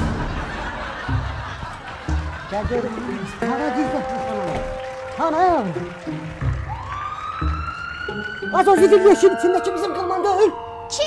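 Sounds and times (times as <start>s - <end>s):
siren wailing: 5.6s - 11.0s.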